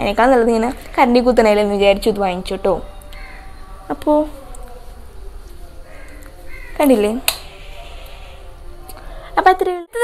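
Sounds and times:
crow cawing: 3.1 - 3.8, 5.8 - 8.5.

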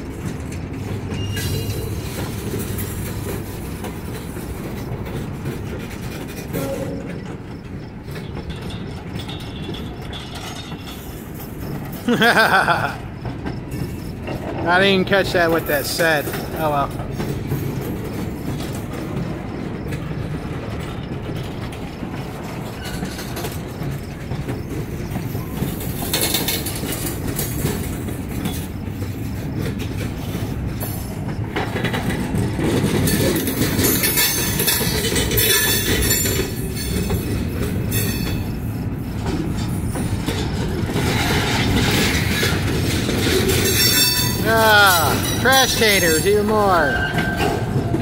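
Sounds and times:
freight train wheels rumbling: 0.0 - 48.0.

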